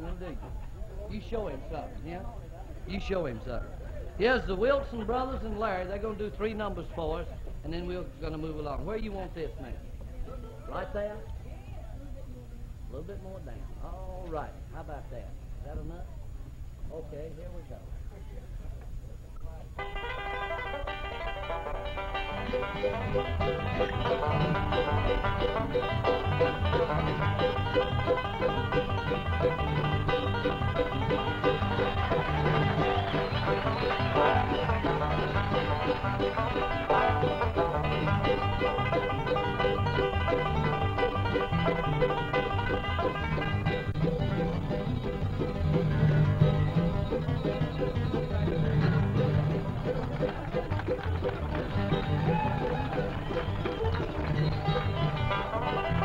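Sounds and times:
bluegrass string band tune: 0:00.0 - 0:11.3, 0:19.4 - 0:56.0.

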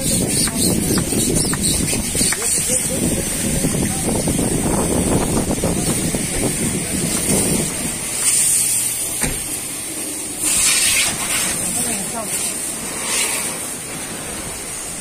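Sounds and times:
men talking: 0:00.0 - 0:09.2
car wash sounds: 0:00.0 - 0:15.0
short hiss: 0:07.2 - 0:09.8, 0:10.4 - 0:14.8.

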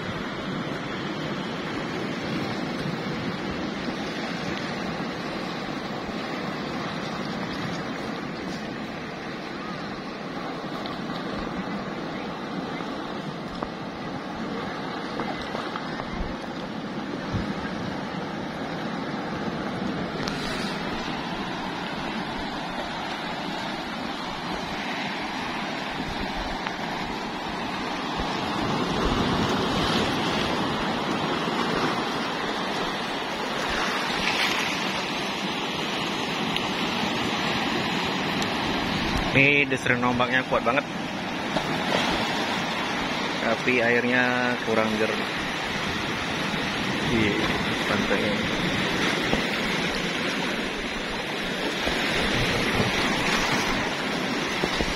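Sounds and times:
sea surf breaking on rocks: 0:00.0 - 0:54.9.

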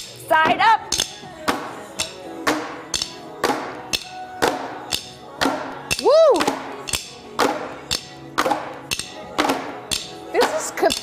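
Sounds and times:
workout music: 0:00.0 - 0:11.0
plastic drumsticks striking: 0:00.9 - 0:11.0.

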